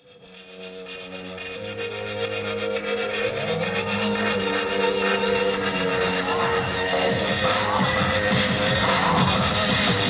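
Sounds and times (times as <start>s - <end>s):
industrial electronic music: 0.0s - 10.0s.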